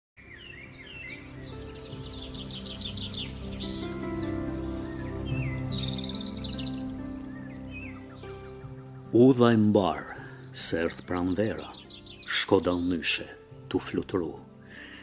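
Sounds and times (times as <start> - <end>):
birds chirping and twittering: 0.2 - 15.0
soft instrumental music: 0.2 - 15.0.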